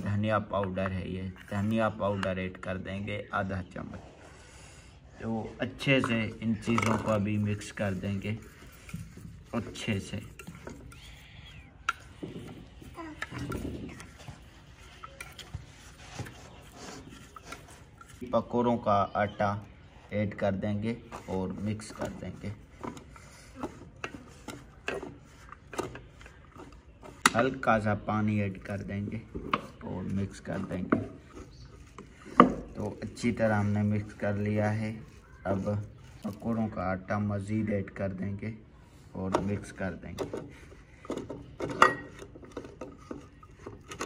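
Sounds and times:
plastic spoon stirring in plastic bowl: 0.0s - 3.3s, 5.2s - 44.0s
hand mixing wet batter: 0.0s - 44.0s.

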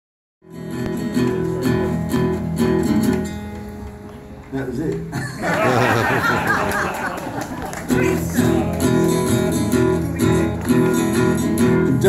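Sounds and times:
acoustic guitar strummed in chords: 0.4s - 4.1s, 7.8s - 12.0s.

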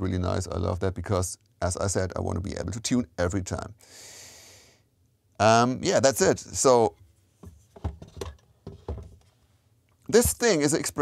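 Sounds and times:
soft handling knocks and clicks: 6.9s - 10.6s.

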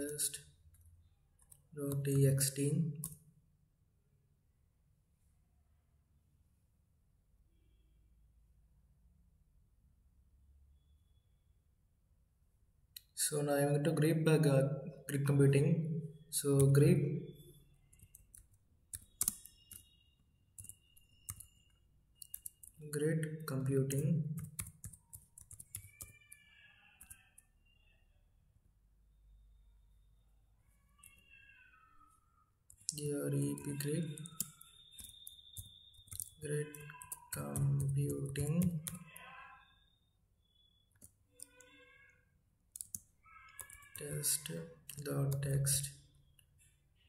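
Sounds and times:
computer keyboard keystrokes: 17.9s - 19.9s, 20.6s - 21.6s, 22.2s - 22.8s, 24.2s - 26.4s, 34.0s - 39.1s, 42.8s - 43.8s.

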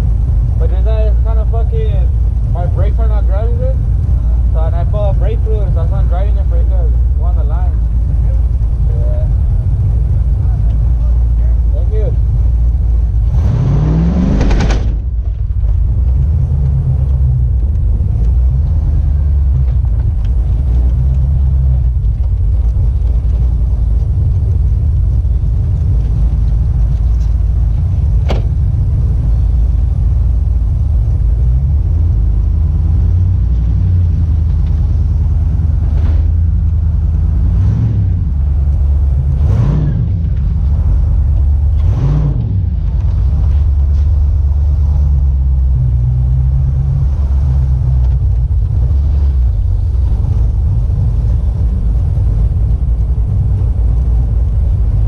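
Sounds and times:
truck engine rumbling and revving: 0.0s - 55.0s.

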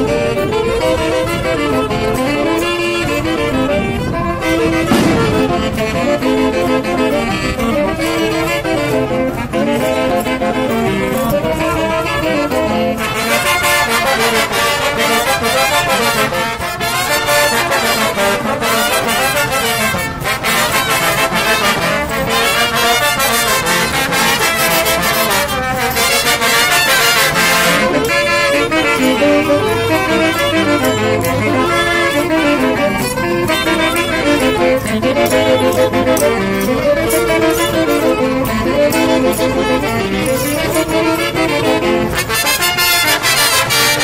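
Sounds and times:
festive brass dance music: 0.0s - 44.0s
busy percussion beat: 3.8s - 44.0s.

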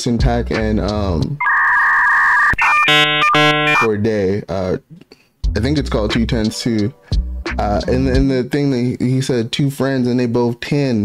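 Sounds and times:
electronic loading jingle: 1.4s - 3.9s.

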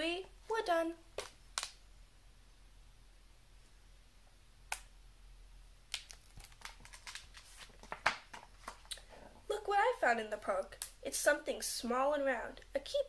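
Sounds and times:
book pages rustling: 6.0s - 8.9s.

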